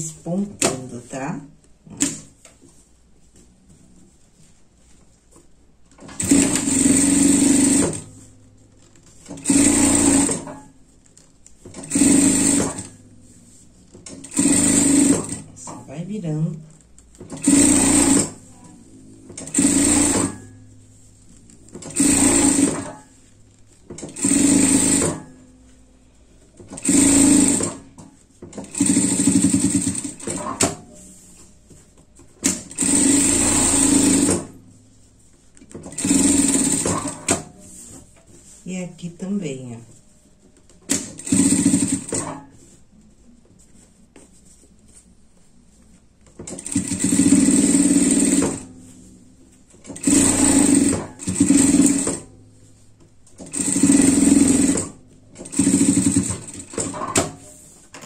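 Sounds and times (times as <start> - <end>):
sewing machine running: 6.0 - 8.2, 9.2 - 10.6, 11.7 - 13.0, 14.1 - 15.5, 17.3 - 18.4, 19.4 - 20.6, 21.7 - 23.1, 24.0 - 25.4, 26.7 - 27.9, 28.6 - 30.9, 32.4 - 34.5, 35.8 - 37.6, 40.9 - 42.4, 46.5 - 48.7, 49.8 - 52.3, 53.4 - 57.4.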